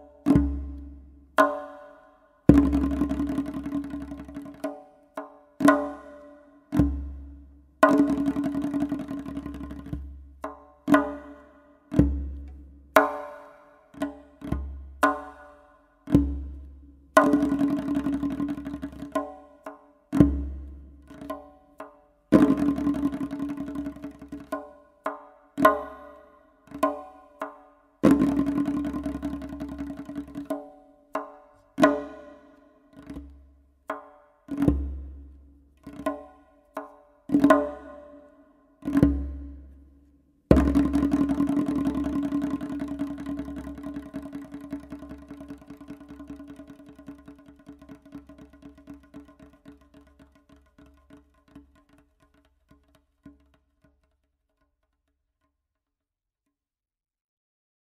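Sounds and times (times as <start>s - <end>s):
goblet drum solo: 0.0s - 38.3s, 38.9s - 39.8s, 40.5s - 52.5s.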